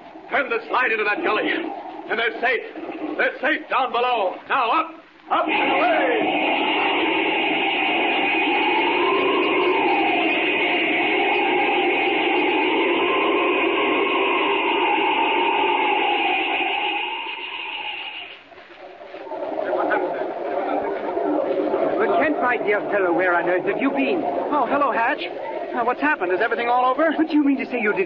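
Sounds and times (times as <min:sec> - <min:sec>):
rushing wind with whistle: 0:00.0 - 0:28.0
crowd murmuring: 0:05.2 - 0:14.5, 0:19.1 - 0:28.0.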